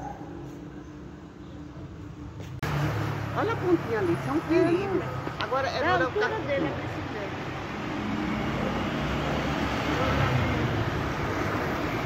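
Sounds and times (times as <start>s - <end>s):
vehicle passing: 2.6s - 12.0s.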